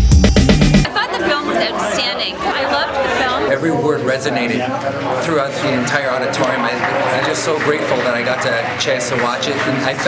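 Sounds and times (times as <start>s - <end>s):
music with heavy beat: 0.0s - 0.9s
crowd chatter: 0.8s - 10.0s.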